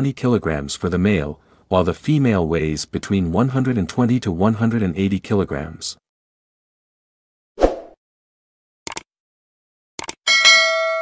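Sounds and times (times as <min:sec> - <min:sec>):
mouse clicks: 0:08.9 - 0:09.1, 0:10.0 - 0:10.2.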